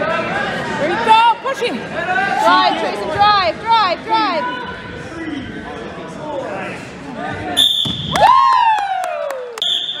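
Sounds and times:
voices in a gym: 0:00.0 - 0:10.0.

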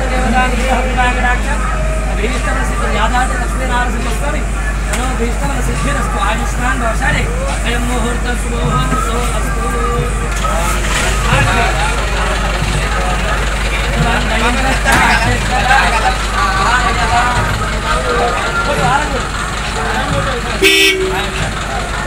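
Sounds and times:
people talking: 0:00.0 - 0:22.0
truck engine running: 0:00.0 - 0:22.0.

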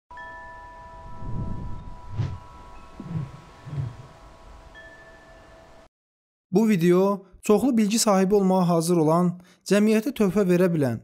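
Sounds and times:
chime tones: 0:00.1 - 0:05.9.

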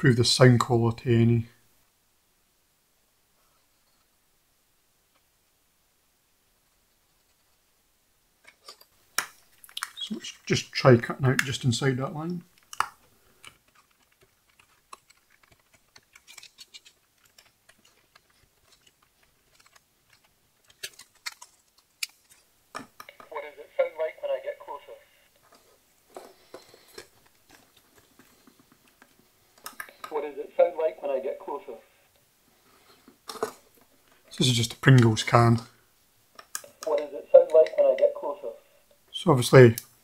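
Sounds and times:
craft knife cutting plastic: 0:12.6 - 0:22.4
recorded voice from small speaker: 0:23.1 - 0:25.2, 0:29.9 - 0:32.0, 0:36.6 - 0:39.8.

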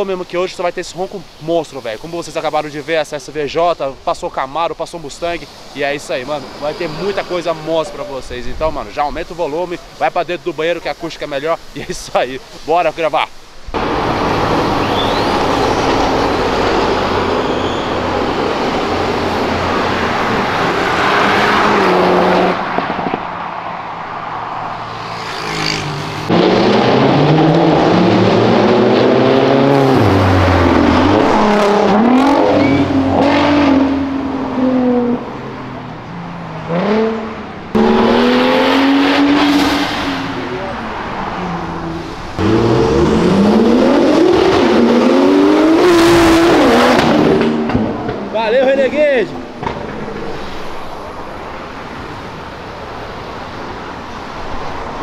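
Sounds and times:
sports car engines revving: 0:13.7 - 0:55.0.

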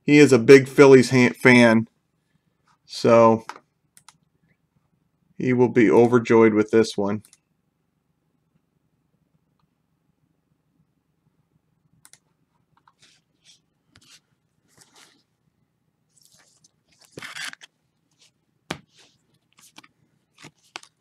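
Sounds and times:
cards and plastic sleeve rustling: 0:14.0 - 0:15.2, 0:16.1 - 0:21.0.

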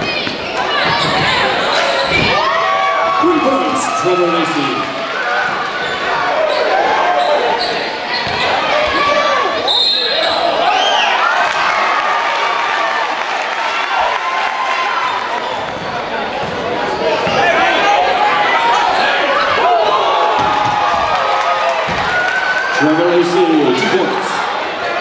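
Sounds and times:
sneakers squeaking: 0:00.0 - 0:02.4, 0:05.5 - 0:10.6, 0:15.0 - 0:17.8
crowd voices and shouts: 0:00.0 - 0:25.0.

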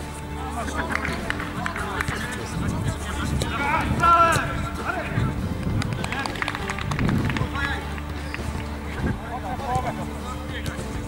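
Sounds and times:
running footsteps: 0:00.0 - 0:11.0.

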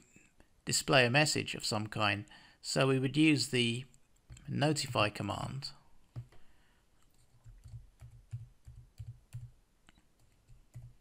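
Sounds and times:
computer keyboard typing: 0:06.1 - 0:06.4, 0:07.1 - 0:09.6, 0:10.2 - 0:11.0.

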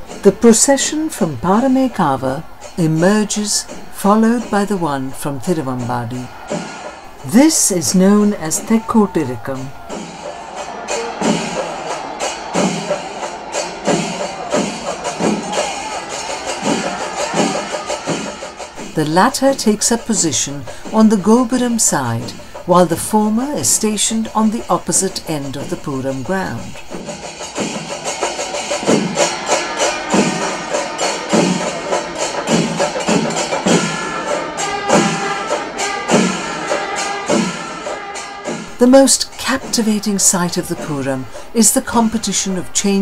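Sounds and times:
loud stick-drum strokes: 0:00.0 - 0:42.1
festival din with higher tones: 0:00.0 - 0:43.0
cymbals clashing: 0:01.6 - 0:05.2, 0:05.8 - 0:19.2, 0:25.6 - 0:41.5.

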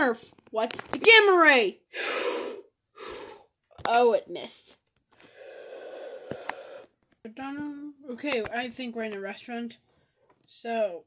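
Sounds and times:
person blowing out breath: 0:01.9 - 0:03.5, 0:05.2 - 0:07.0.

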